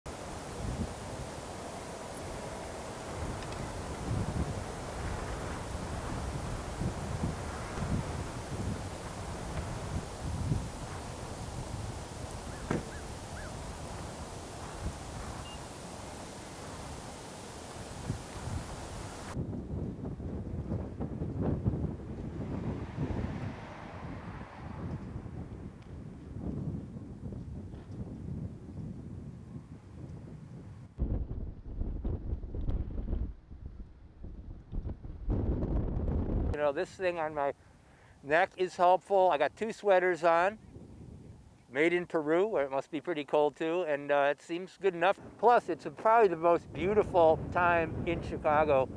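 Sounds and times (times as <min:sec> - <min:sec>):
outdoor ambience: 0:00.1 - 0:29.9
wind buffeting microphone: 0:00.1 - 0:36.6, 0:40.6 - 0:41.6, 0:46.5 - 0:48.9.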